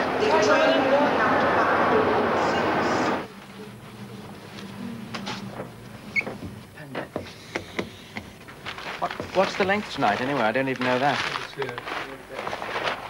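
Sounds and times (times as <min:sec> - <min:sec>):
railway platform noise beside train: 0:00.0 - 0:06.7
marker pen squeaking on whiteboard: 0:06.0 - 0:06.5.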